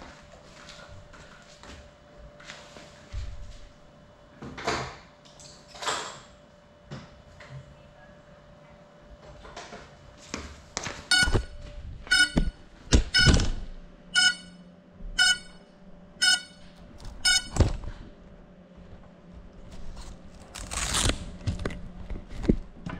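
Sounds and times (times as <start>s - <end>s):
short electronic beeps: 11.1s - 13.4s, 14.2s - 14.6s, 15.2s - 15.6s, 16.2s - 17.6s.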